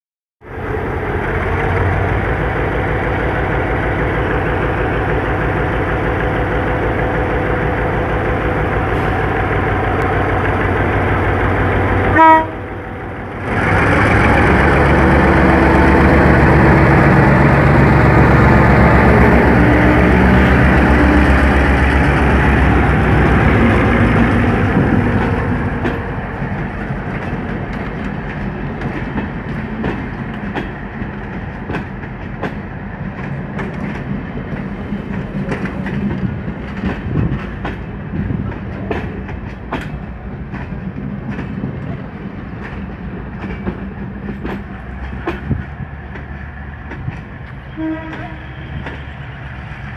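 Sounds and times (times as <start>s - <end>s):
diesel locomotive engine: 0.4s - 49.9s
locomotive horn toot: 12.1s - 12.7s, 47.5s - 49.4s
train wheels clicking on rails: 13.3s - 17.2s, 18.6s - 49.9s.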